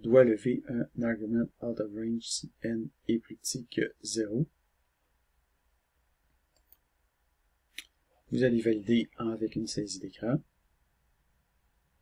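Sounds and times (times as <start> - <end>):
computer mouse click: 6.5 - 6.9.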